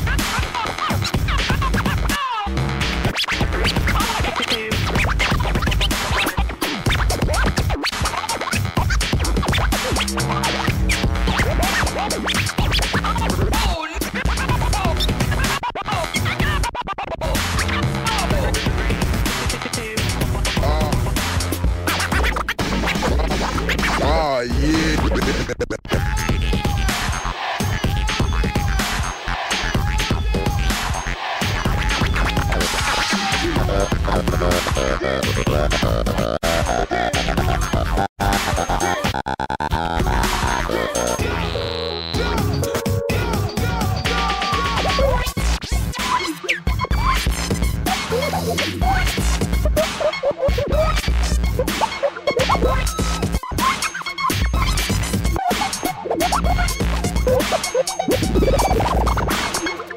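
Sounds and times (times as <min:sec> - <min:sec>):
hip hop beat: 0:00.0 - 0:59.9
turntable scratching: 0:00.0 - 0:59.9.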